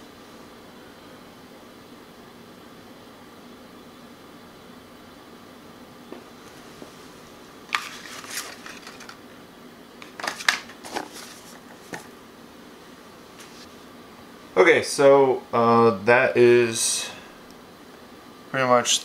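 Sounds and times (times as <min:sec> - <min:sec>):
low room hum: 0:00.0 - 0:19.0
rustling and clicking handling noises: 0:07.7 - 0:09.2, 0:10.0 - 0:12.2.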